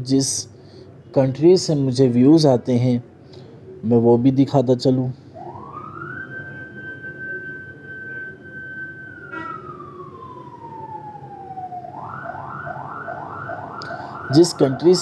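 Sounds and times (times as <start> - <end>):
emergency siren wailing and yelping: 5.3 - 15.0.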